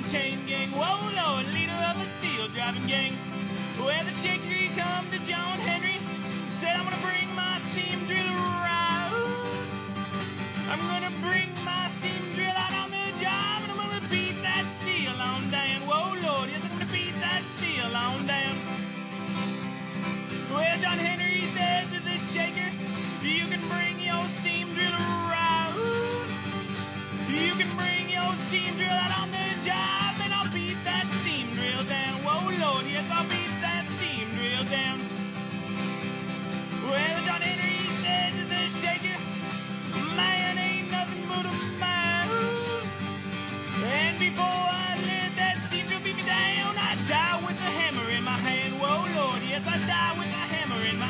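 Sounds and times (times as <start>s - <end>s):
acoustic guitar with sliding notes: 0.0s - 51.0s.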